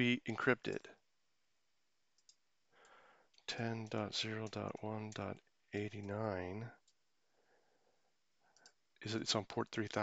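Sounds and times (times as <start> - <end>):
faint breath: 2.7 - 3.4, 7.2 - 8.8.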